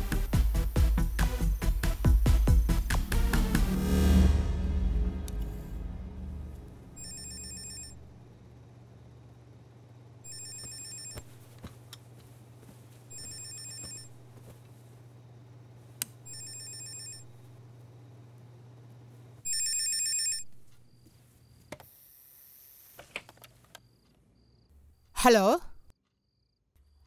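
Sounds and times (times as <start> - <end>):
steady low hum: 0.0 - 10.5
telephone electronic ringer trilling: 7.0 - 8.0, 10.3 - 11.2, 16.3 - 17.2.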